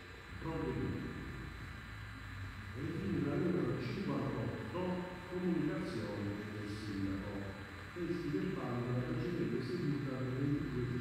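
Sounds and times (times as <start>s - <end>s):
electrical hum: 0.0s - 11.0s
man speaking: 0.4s - 1.4s, 2.8s - 11.0s.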